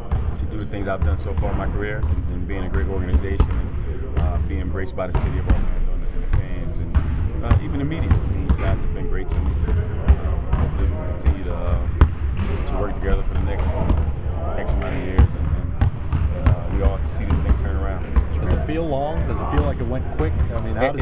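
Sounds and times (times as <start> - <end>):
basketballs bouncing on hardwood: 3.1 - 3.6, 14.7 - 18.6.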